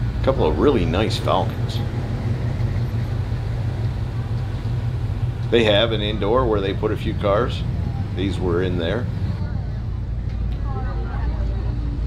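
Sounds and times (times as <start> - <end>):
low rumble of handling noise: 0.0 - 12.0.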